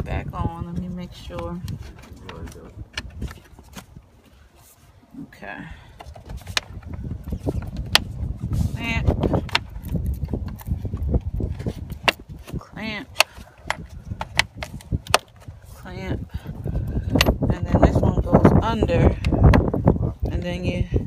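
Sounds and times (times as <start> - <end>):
rumbling handling noise: 0.0 - 20.8.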